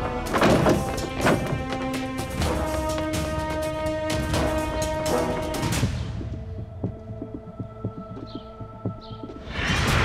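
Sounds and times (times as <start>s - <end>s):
heartbeat-like throbbing pulse: 5.7s - 10.0s.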